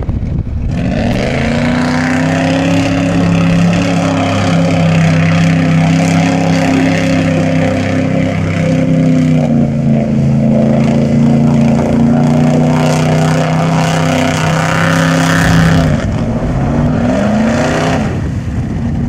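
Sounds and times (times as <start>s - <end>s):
mud and water spraying: 0.7s - 19.0s.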